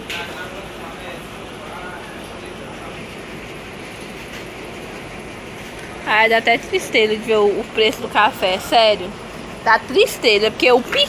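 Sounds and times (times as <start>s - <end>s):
grocery store background noise: 0.0s - 11.0s.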